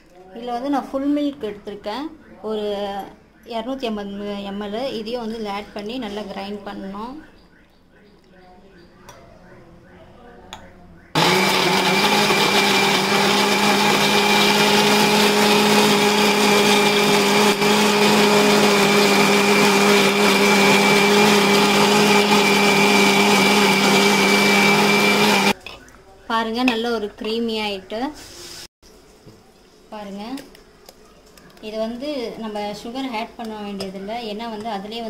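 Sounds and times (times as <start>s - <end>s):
electric mixer grinder blending: 11.2s - 25.6s.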